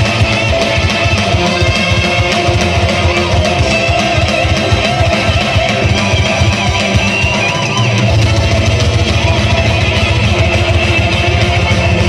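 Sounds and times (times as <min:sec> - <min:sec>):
distorted electric guitars: 0:00.0 - 0:12.0
fast dense drumming: 0:00.0 - 0:12.0
heavy metal band playing live: 0:00.0 - 0:12.0
keyboard: 0:00.0 - 0:12.0.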